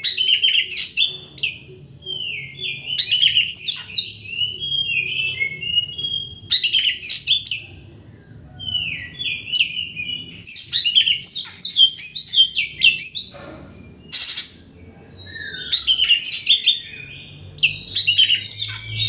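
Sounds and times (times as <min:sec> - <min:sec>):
bird singing varied song: 0:00.0 - 0:19.0.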